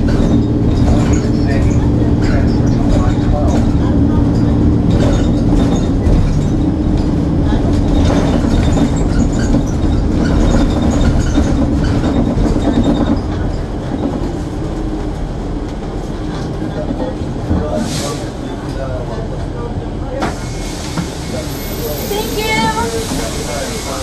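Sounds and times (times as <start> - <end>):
transit vehicle low rumble: 0.0 - 24.0.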